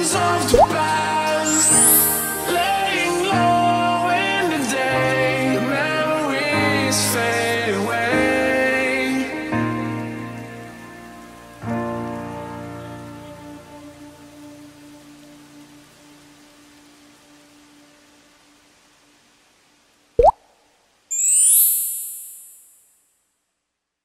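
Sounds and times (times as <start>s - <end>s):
rising sound effect: 1.5s - 2.7s, 21.1s - 22.7s.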